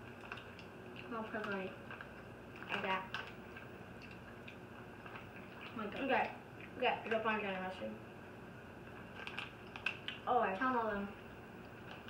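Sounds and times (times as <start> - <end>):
plastic bag crinkling: 0.0 - 4.4, 8.9 - 10.6.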